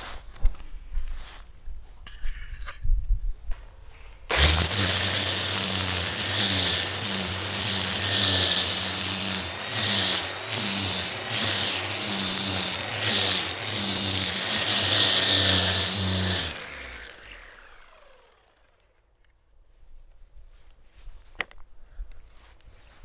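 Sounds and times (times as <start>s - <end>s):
trimmer head swishing through grass: 4.3s - 17.4s
string trimmer running: 4.3s - 19.0s.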